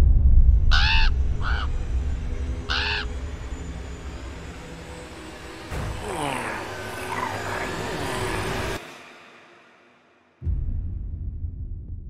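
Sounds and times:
deep rumble: 0:00.0 - 0:04.8, 0:10.5 - 0:12.0
crow cawing: 0:00.7 - 0:01.8, 0:02.6 - 0:03.2.

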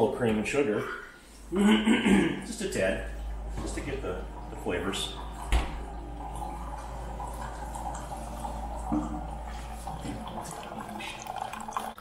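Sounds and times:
coffee machine humming: 0:01.2 - 0:12.0
coffee streaming into mug: 0:03.0 - 0:12.0.

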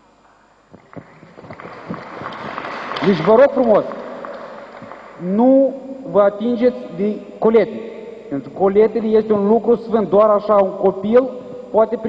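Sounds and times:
audience applause: 0:00.8 - 0:05.2.

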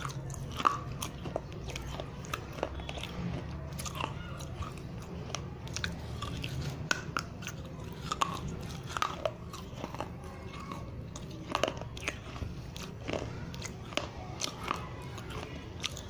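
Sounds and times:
chewing with mouth closed: 0:00.0 - 0:16.0
clay crunching between teeth: 0:00.0 - 0:16.0.

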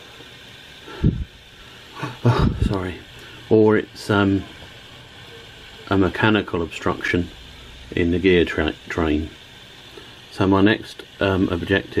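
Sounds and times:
model train motor running: 0:00.0 - 0:12.0.

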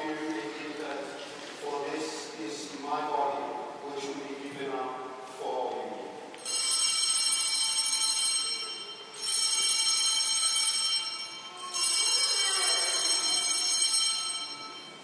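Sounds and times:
altar bells jingling: 0:06.4 - 0:15.0.

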